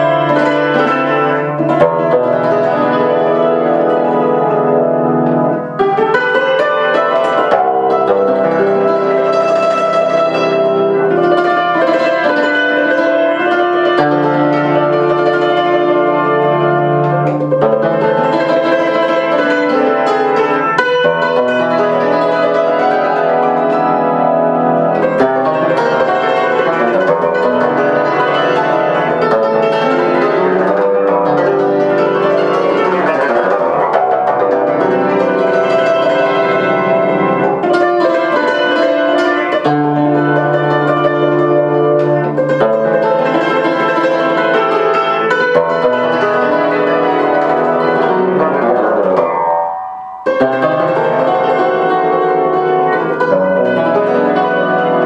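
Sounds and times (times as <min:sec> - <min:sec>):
cimbalom played with hammers: 0:00.0 - 0:55.0.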